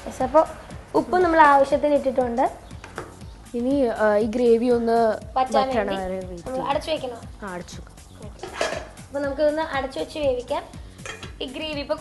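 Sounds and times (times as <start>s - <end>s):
background music: 0.0s - 12.0s
person speaking: 5.2s - 8.5s
spoon scraping metal saucepan: 8.4s - 9.0s, 11.0s - 11.4s.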